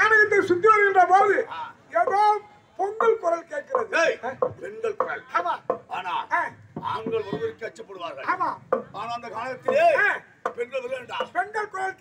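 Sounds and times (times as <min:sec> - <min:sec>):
man speaking over public address: 0:00.0 - 0:12.0.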